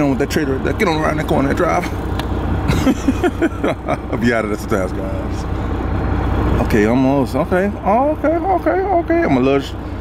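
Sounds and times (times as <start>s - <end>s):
diesel engine low rumble: 0.0s - 10.0s.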